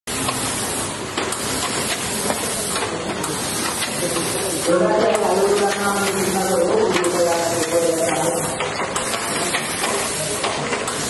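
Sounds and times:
industrial machinery hissing and clattering: 0.1 - 11.0.

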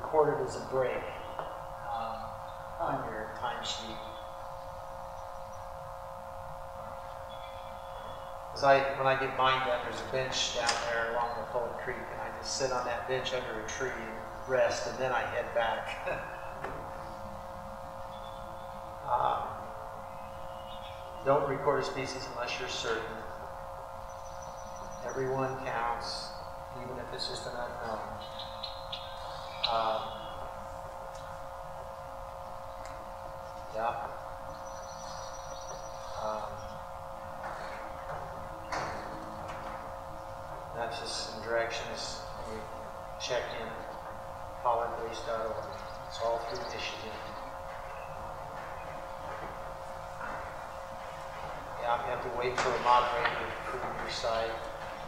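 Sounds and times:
faint voices: 0.0 - 4.2, 25.0 - 28.2, 29.6 - 30.6, 36.2 - 39.7, 40.7 - 44.0, 44.6 - 54.8
room tone hum: 0.0 - 55.0.

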